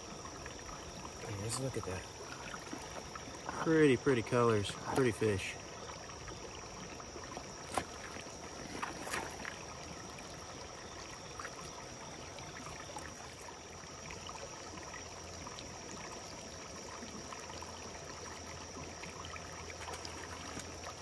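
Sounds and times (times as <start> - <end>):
creek water trickling over rocks: 0.0 - 21.0.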